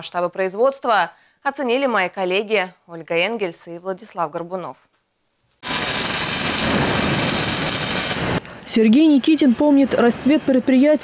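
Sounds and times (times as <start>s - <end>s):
power grinder grinding metal: 5.6s - 8.4s.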